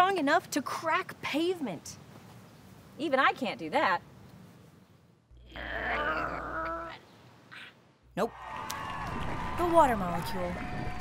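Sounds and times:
woman groaning with effort: 5.4 - 7.0
low rumble: 8.3 - 11.0.

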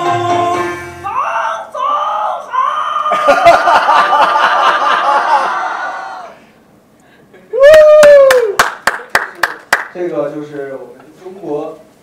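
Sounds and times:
high voice calling out: 1.0 - 3.1.

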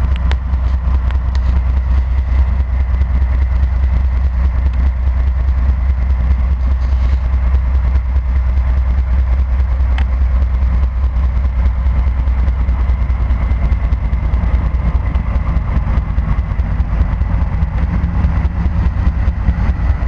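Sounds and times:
diesel locomotive rumbling past: 0.0 - 20.0.

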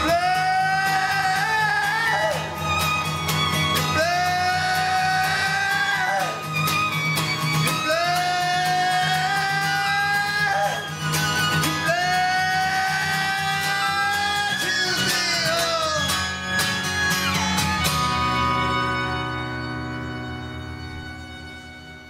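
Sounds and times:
upright bass: 0.0 - 6.5, 7.6 - 22.0
fiddle playing: 0.0 - 22.0
strummed acoustic guitar: 0.0 - 22.0.

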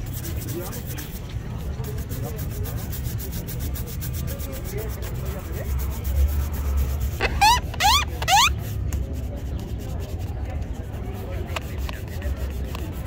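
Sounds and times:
brush scrubbing leather shoe: 0.0 - 13.0
short rising squeaks: 7.2 - 8.6.

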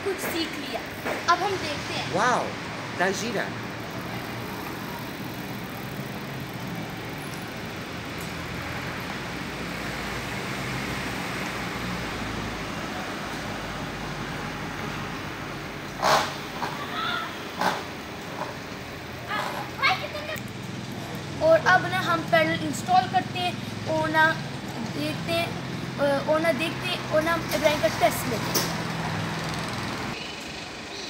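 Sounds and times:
street traffic hum: 0.0 - 31.0.

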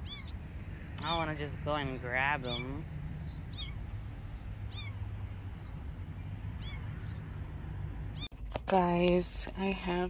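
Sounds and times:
low background rumble: 0.0 - 10.0
kitten mewing: 2.4 - 2.8, 3.5 - 3.8, 4.7 - 5.0.

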